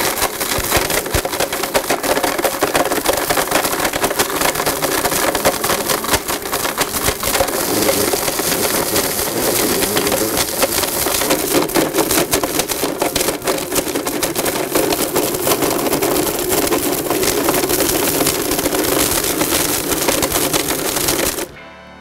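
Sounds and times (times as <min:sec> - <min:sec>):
blender motor grinding plastic: 0:00.0 - 0:21.5
fragments rattling in jar: 0:00.0 - 0:21.5.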